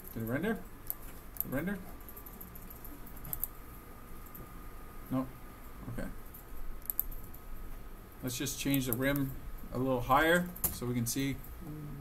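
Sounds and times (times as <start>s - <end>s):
faint steady whine: 0.0s - 12.0s
keyboard and mouse clicking: 2.3s - 3.5s, 6.8s - 7.4s.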